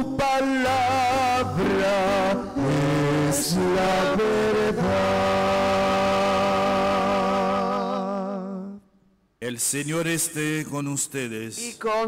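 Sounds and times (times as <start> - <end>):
person singing with accompaniment: 0.0 - 8.9.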